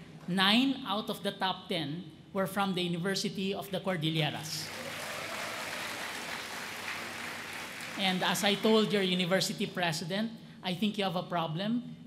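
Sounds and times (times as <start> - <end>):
large audience applauding: 4.6 - 9.2.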